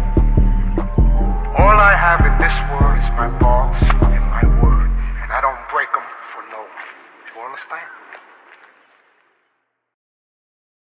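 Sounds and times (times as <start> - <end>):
hip-hop beat bass: 0.0 - 5.7
men talking indistinctly: 1.2 - 8.7.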